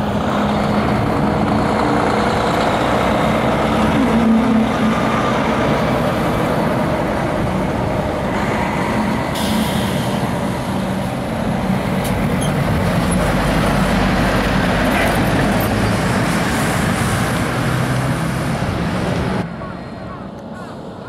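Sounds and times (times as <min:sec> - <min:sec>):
truck driving past: 0:00.0 - 0:21.0.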